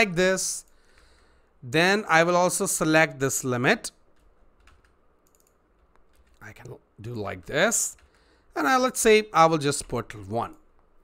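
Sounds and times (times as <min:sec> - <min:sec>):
faint keyboard clicks: 0:04.0 - 0:06.8, 0:07.4 - 0:08.3.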